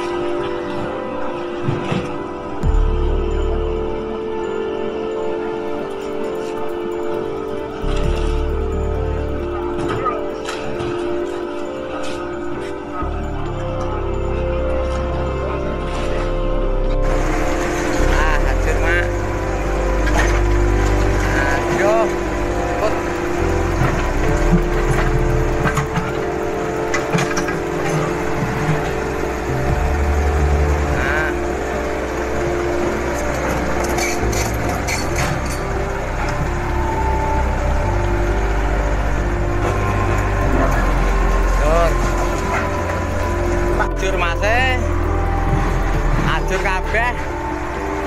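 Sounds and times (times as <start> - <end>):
excavator running: 0.0 - 48.0.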